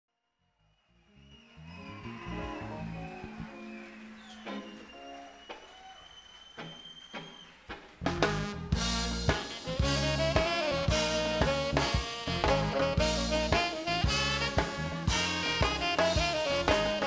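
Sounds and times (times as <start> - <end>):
live blues band music: 2.0 - 5.9, 6.6 - 17.0.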